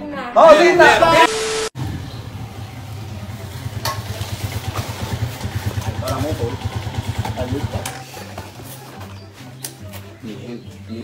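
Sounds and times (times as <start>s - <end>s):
small motorcycle engine idling: 1.8s - 9.2s.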